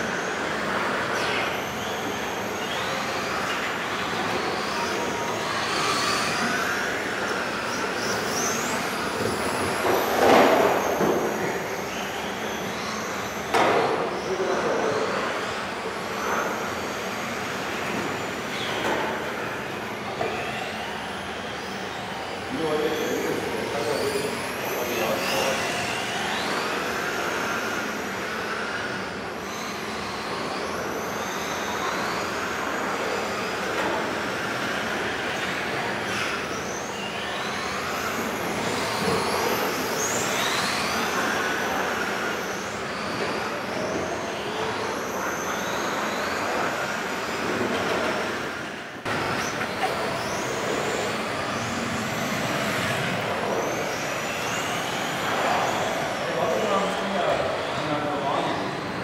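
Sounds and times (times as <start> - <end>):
rc car electric motors whining: 0.0 - 59.0.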